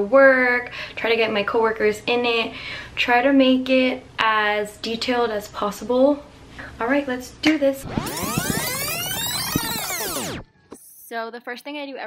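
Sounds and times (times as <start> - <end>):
electronic sweep glide: 7.8 - 10.5.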